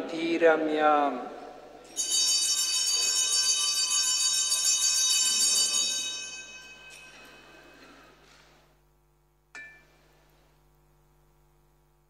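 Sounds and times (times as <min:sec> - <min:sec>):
altar bells jingling: 0:01.8 - 0:07.8.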